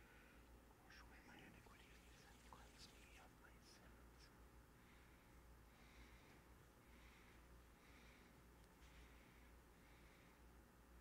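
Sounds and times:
low steady hum: 0:00.0 - 0:11.0
faint whispering prayers: 0:00.8 - 0:04.4.

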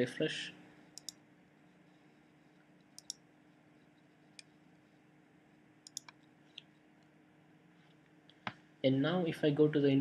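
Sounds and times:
faint steady hum: 0:00.0 - 0:10.0
computer mouse clicks: 0:00.9 - 0:01.2, 0:02.8 - 0:03.2, 0:05.8 - 0:07.1.

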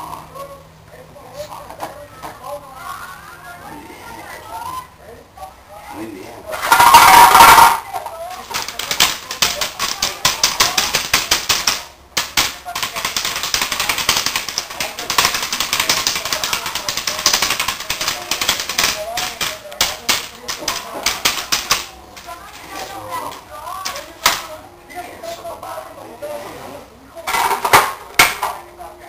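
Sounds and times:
loud burst of sound: 0:06.6 - 0:07.9
dog claws clicking on tile: 0:08.3 - 0:22.4.

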